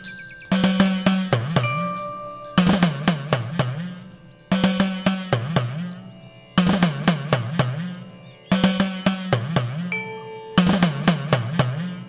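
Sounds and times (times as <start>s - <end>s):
hand drum playing: 0.5s - 6.0s, 6.6s - 12.0s.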